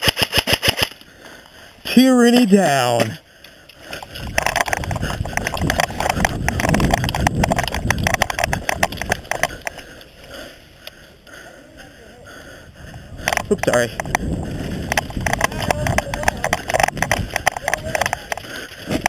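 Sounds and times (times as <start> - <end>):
loose gear and rifle rattling: 0.0 - 1.1, 1.9 - 10.4, 13.2 - 19.0
running footsteps on grass: 3.9 - 10.4, 12.4 - 19.0.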